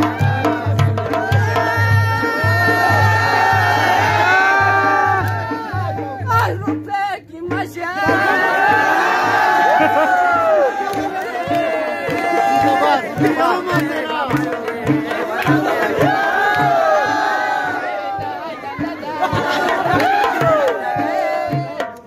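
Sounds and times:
crowd singing along: 0:00.0 - 0:06.3, 0:07.8 - 0:22.0
men singing and shouting: 0:00.0 - 0:22.0
steady drum beat: 0:00.0 - 0:22.0.

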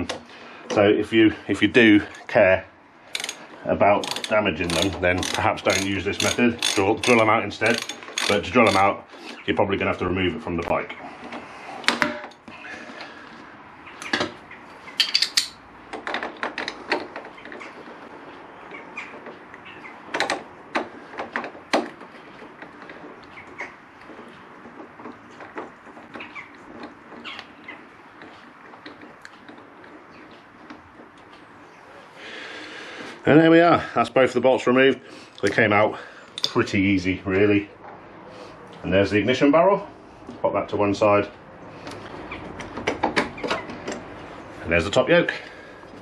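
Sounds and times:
tools clinking and knocking on metal: 0:03.2 - 0:03.4, 0:04.0 - 0:08.9.

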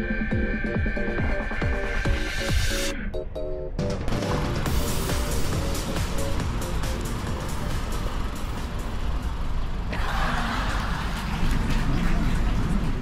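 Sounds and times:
low vehicle rumble: 0:03.8 - 0:13.0.

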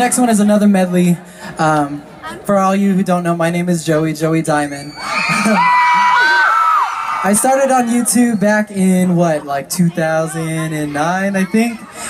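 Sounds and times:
audience cheering and screaming: 0:04.7 - 0:09.2, 0:10.3 - 0:12.0.

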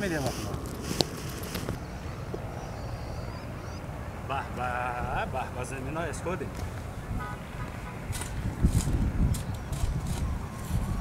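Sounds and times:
high rustle: 0:00.0 - 0:01.8
outdoor background noise: 0:00.0 - 0:11.0
faint high chirps: 0:01.8 - 0:04.0.

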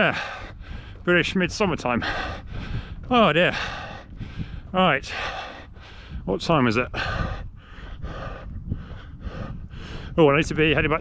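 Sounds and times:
hard breathing: 0:00.0 - 0:10.2.

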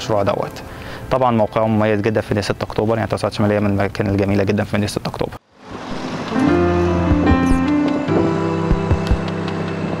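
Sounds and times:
sustained chords: 0:05.7 - 0:10.0
low thudding beat: 0:06.6 - 0:09.4.

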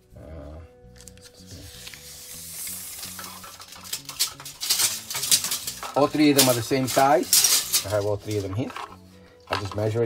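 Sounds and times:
tape measure rattling clicks: 0:01.0 - 0:09.0
tape measure blade hissing: 0:01.4 - 0:08.0.

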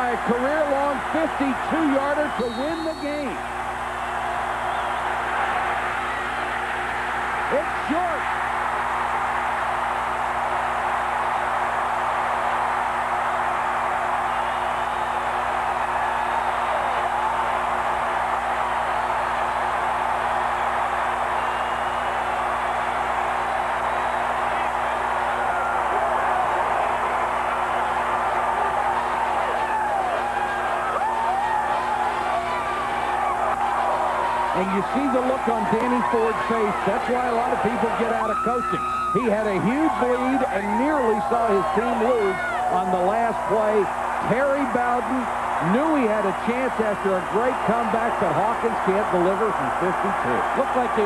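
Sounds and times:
crowd whoops: 0:00.0 - 0:51.0
stadium crowd cheering: 0:00.0 - 0:51.0.

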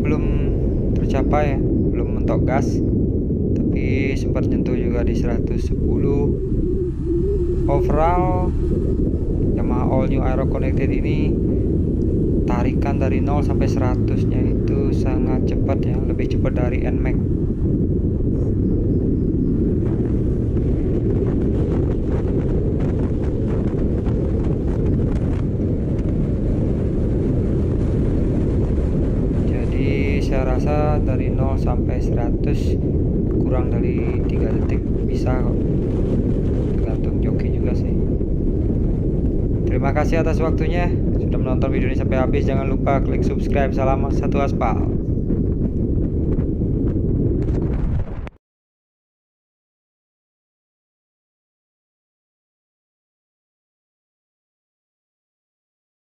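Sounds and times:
wind buffeting microphone: 0:00.0 - 0:48.4.

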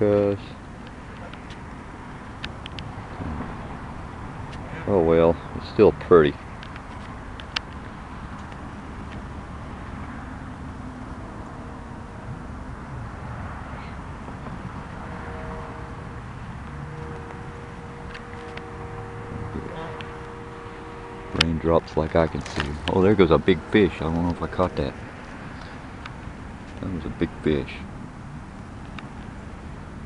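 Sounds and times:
distant road traffic rumble: 0:00.0 - 0:30.0
droning engine hum: 0:00.0 - 0:30.0.

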